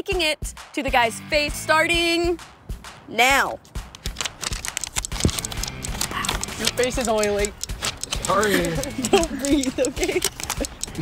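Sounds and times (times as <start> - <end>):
background music: 0.0 - 11.0
sticky notes peeled and slapped: 3.7 - 11.0.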